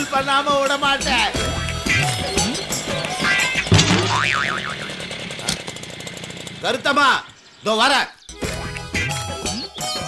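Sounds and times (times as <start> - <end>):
comic boing sound effect: 3.7 - 4.9.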